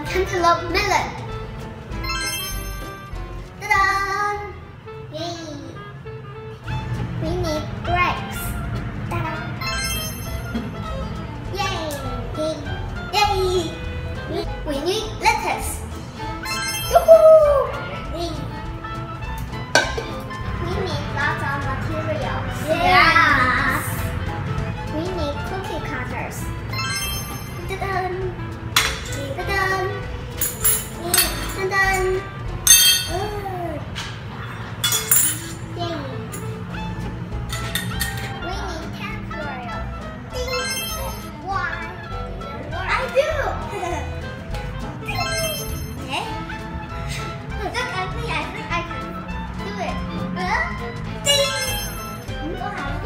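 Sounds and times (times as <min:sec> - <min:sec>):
background music: 0:00.0 - 0:53.0
metal cookie cutters clinking: 0:30.4 - 0:32.1, 0:32.7 - 0:33.3, 0:34.8 - 0:35.7, 0:37.5 - 0:38.4.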